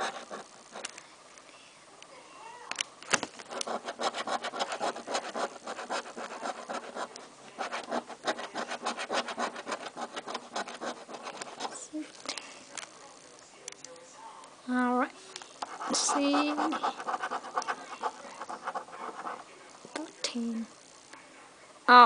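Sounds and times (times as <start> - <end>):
coin scratching a lottery ticket: 0.0 - 0.9, 3.4 - 11.8, 15.6 - 19.5.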